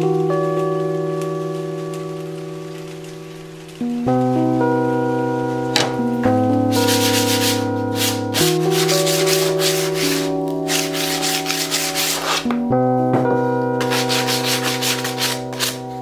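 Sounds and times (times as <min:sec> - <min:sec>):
background music with held chords: 0:00.0 - 0:16.0
sandpaper rubbing wood: 0:06.7 - 0:12.5, 0:13.8 - 0:15.9.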